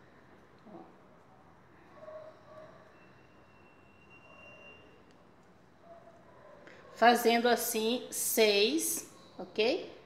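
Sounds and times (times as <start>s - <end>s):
faint high thin tone: 2.7s - 5.1s.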